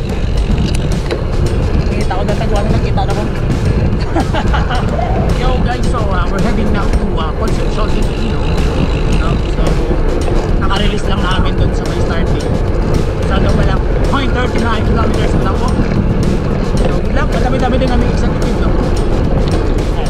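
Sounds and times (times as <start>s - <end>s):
music: 0.0s - 20.0s
wind rumbling on microphone: 0.0s - 20.0s.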